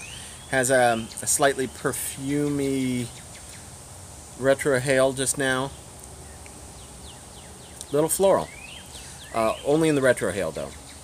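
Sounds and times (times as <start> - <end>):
faint bird chirps: 0.0 - 3.8, 5.5 - 11.0
steady high hiss: 0.0 - 11.0.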